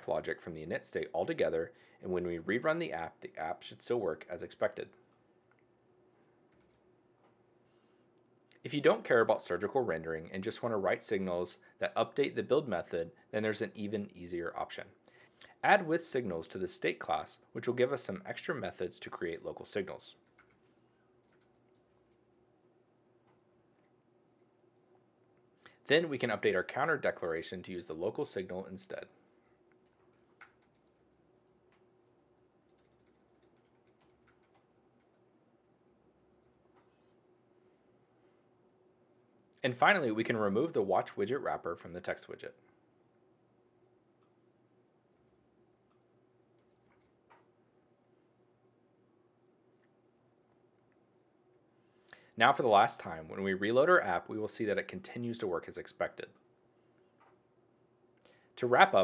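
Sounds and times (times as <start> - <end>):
faint steady hum: 0.0 - 59.0
keyboard typing: 6.5 - 6.8, 20.2 - 22.6, 29.7 - 35.2, 35.8 - 36.7, 45.1 - 47.2.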